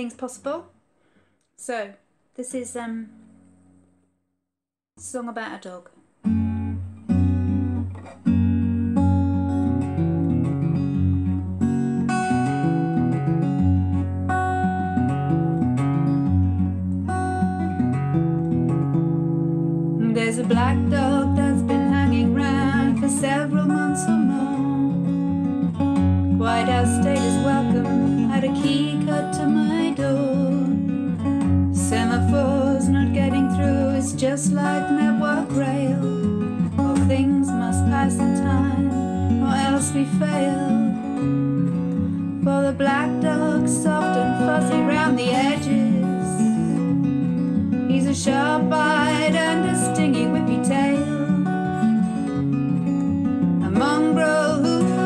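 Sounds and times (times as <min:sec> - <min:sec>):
acoustic guitar strumming: 0:06.2 - 0:55.0
woman singing: 0:20.0 - 0:25.3, 0:26.2 - 0:41.3, 0:42.2 - 0:46.8, 0:47.8 - 0:51.9, 0:53.6 - 0:55.0.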